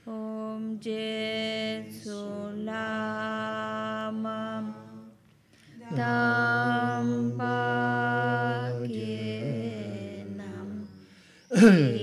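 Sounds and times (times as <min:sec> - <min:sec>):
man chanting prayer: 0:05.8 - 0:12.0.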